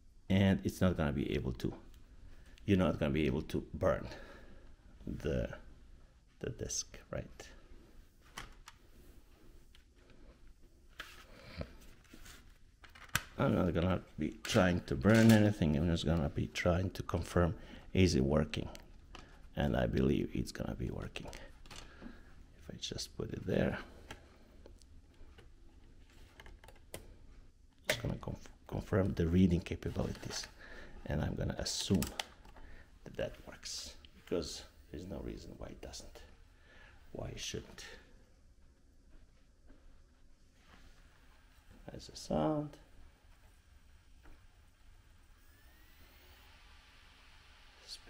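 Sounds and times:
thin rising whine: 0:41.1 - 0:48.0
disc drive whirring: 0:42.8 - 0:48.0.

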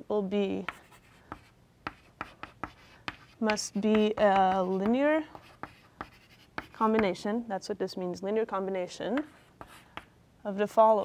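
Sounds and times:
chalk tapping and scraping: 0:00.6 - 0:07.2, 0:09.0 - 0:10.1.

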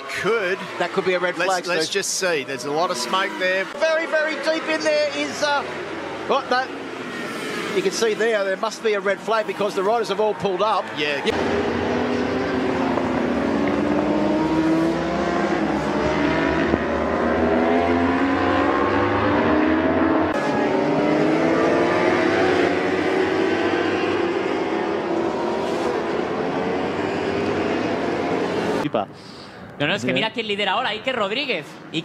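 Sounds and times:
racing motorcycle engines: 0:00.0 - 0:29.6.

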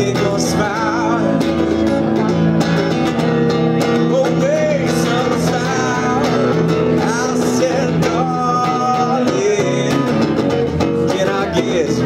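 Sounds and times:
electric guitar playing country-rock: 0:00.0 - 0:12.0.

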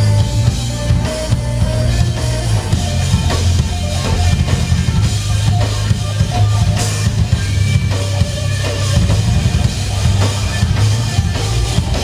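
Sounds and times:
distorted electric guitars: 0:00.0 - 0:12.0
drum kit with heavy bass drum: 0:00.0 - 0:12.0.

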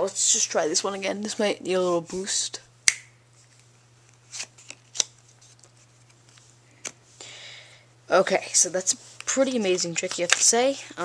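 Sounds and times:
cards sliding rustle: 0:03.4 - 0:07.0, 0:08.8 - 0:11.0.

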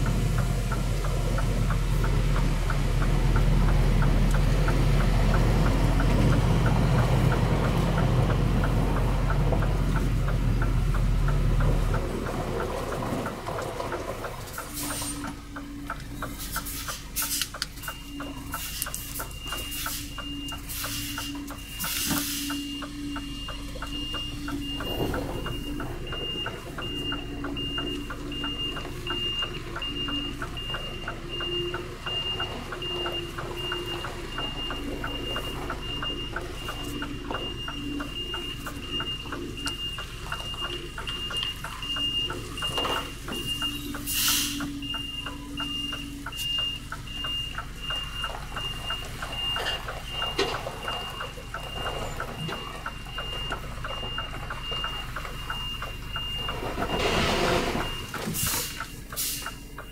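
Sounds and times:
truck engine humming: 0:00.0 - 0:59.9
truck reversing alarm beeping: 0:00.0 - 0:59.9.

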